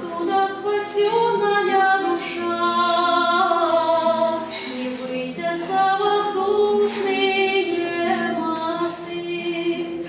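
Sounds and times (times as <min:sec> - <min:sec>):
acoustic guitar: 0:00.0 - 0:10.0
woman singing: 0:00.0 - 0:10.0.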